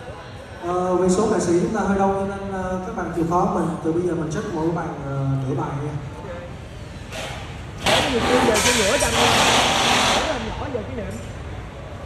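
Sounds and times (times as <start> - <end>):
people talking: 7.9 - 9.4, 10.1 - 11.3
loud hissing burst: 7.9 - 10.6.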